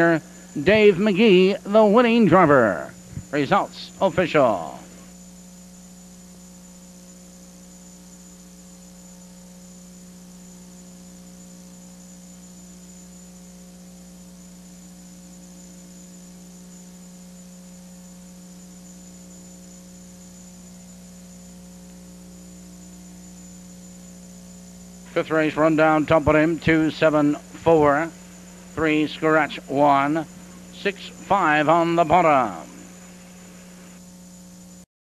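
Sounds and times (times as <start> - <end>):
electrical mains hum: 0.0 - 34.9.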